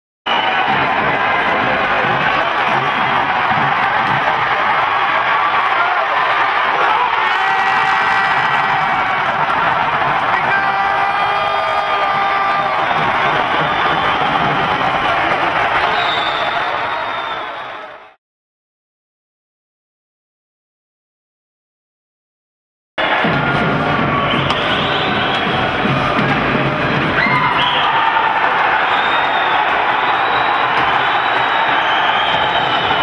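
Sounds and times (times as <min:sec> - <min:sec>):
music: 0:00.3 - 0:05.3, 0:07.6 - 0:16.1, 0:23.0 - 0:33.0
arena crowd cheering: 0:00.3 - 0:18.2, 0:23.0 - 0:33.0.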